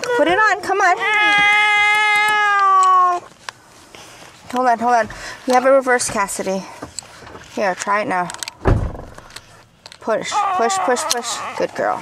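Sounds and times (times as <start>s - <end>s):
child whining cry: 0.0s - 3.3s, 10.3s - 11.9s.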